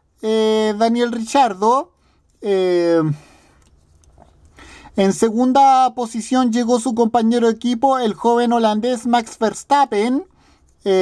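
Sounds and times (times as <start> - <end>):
soft intake of breath: 4.5 - 5.0.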